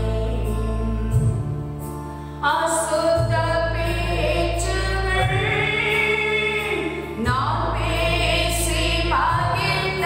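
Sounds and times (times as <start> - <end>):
woman singing a hymn: 0.0 - 1.4, 2.4 - 10.0.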